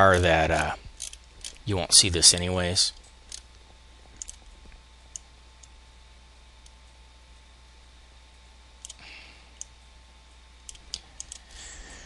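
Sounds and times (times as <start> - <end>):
computer mouse clicking: 4.2 - 4.4, 10.6 - 11.5.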